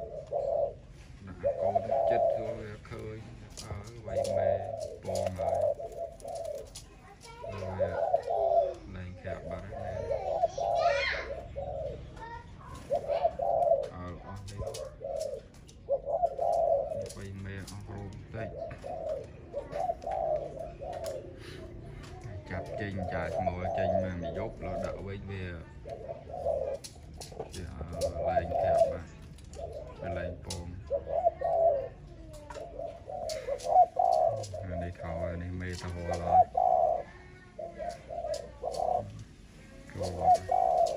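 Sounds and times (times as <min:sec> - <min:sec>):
dove cooing: 0:00.0 - 0:40.9.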